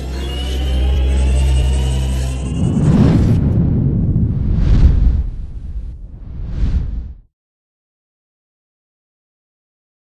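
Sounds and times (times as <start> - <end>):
high rising tone: 0.0 - 7.1
deep drone: 0.0 - 7.2
rumbling whoosh: 2.0 - 7.3.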